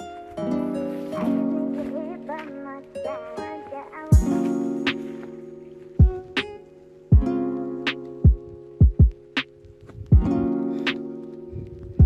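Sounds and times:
held instrument chords: 0:00.0 - 0:12.0
kick drum beats: 0:04.1 - 0:05.0, 0:06.0 - 0:07.4, 0:08.2 - 0:10.5.

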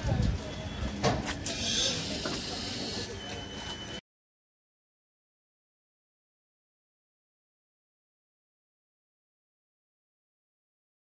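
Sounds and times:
voices on platform: 0:00.0 - 0:04.0.

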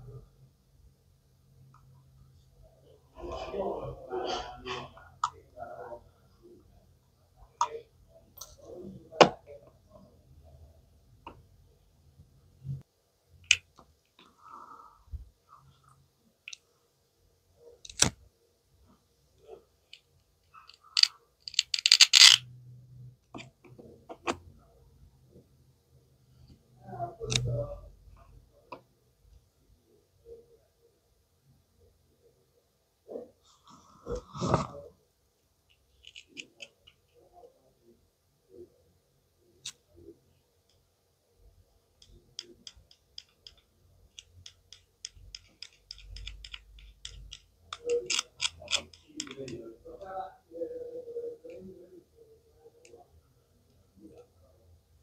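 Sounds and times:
plastic toy knife clicking: 0:21.0 - 0:22.4, 0:44.4 - 0:49.4.

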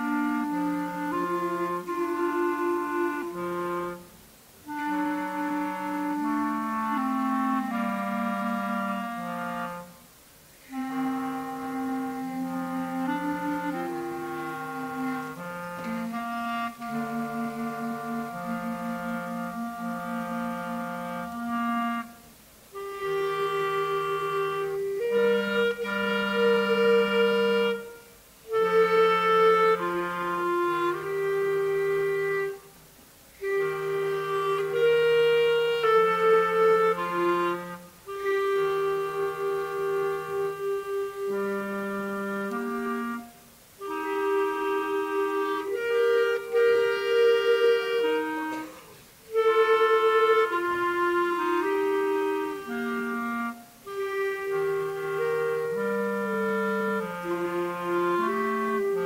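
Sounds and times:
clarinets playing in harmony: 0:00.0 - 0:59.0.

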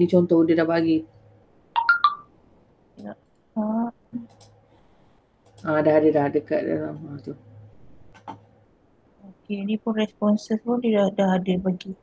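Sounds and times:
electronic notification beeps: 0:01.8 - 0:02.3.

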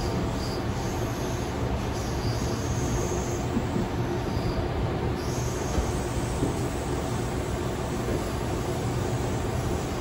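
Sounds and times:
train running rumble: 0:00.0 - 0:10.0.

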